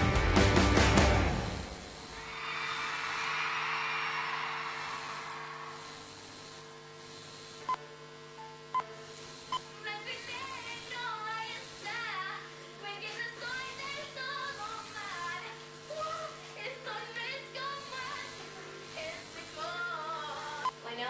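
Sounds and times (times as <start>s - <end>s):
concert crowd cheering: 0.0s - 6.1s
girl singing: 9.9s - 20.7s.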